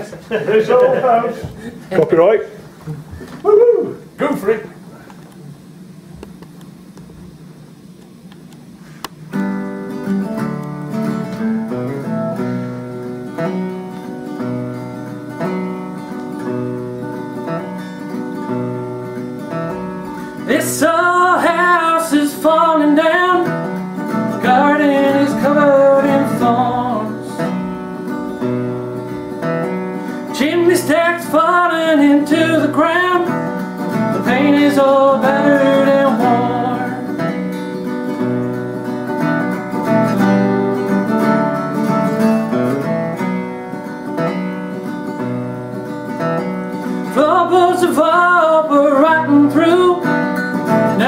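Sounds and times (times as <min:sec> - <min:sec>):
acoustic guitar playing: 0:08.2 - 0:51.0
man singing: 0:20.4 - 0:23.7, 0:24.3 - 0:27.5, 0:30.3 - 0:37.3, 0:47.1 - 0:51.0.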